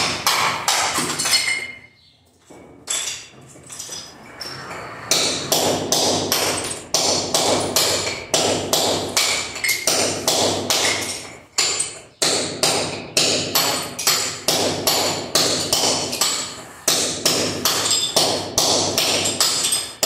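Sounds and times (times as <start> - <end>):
tiles being knocked off concrete: 0.0 - 1.9, 2.5 - 4.1, 7.6 - 16.5, 17.3 - 20.0.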